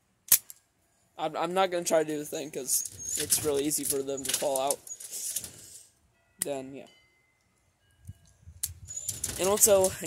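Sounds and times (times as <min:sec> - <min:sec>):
air revolver click: 0:00.3 - 0:00.6
faint handling noise: 0:08.1 - 0:10.0.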